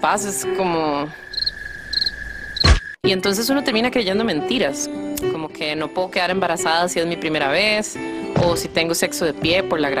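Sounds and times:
cricket chirps: 1.1s - 3.0s.

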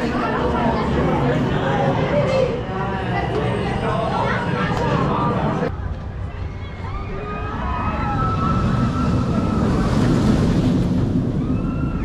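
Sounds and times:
roller coaster train on track: 0.0s - 12.0s.

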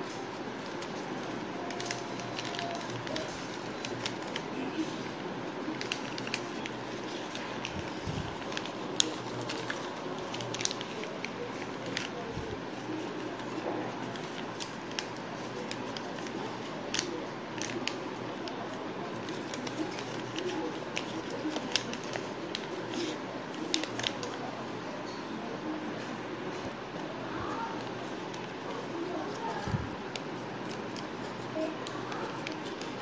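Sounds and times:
paper folding and crackling: 0.0s - 24.6s, 26.9s - 33.0s.

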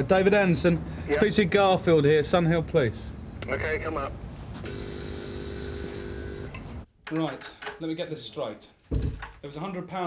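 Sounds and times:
door-release buzzer buzzing: 4.6s - 6.6s.

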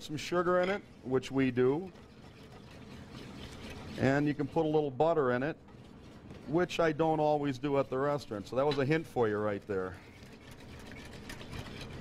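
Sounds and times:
whisk beating batter in metal bowl: 0.0s - 12.0s.

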